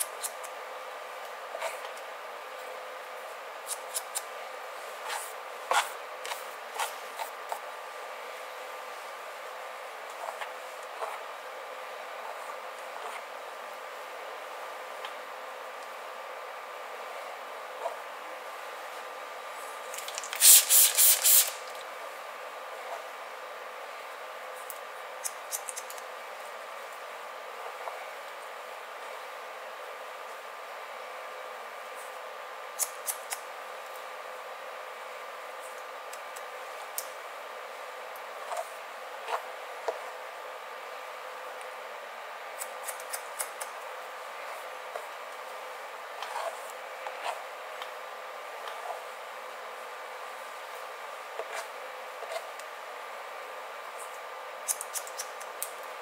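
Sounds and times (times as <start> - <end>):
faint steady hum: 0.0 - 56.0
scissors snipping hair: 3.6 - 4.3, 25.2 - 26.0, 32.8 - 33.4, 42.6 - 43.8, 54.6 - 55.8
spray bottle spritzing: 20.0 - 21.7.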